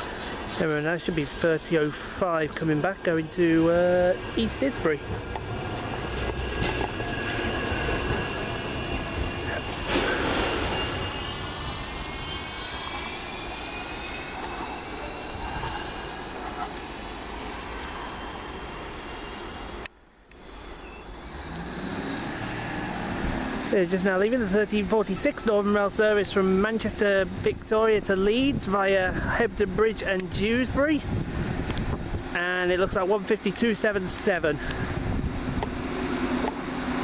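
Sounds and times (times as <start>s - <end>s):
low hum: 0.0s - 25.0s
tram motors whining: 0.0s - 37.0s
wheels rumbling on rail: 0.0s - 37.0s.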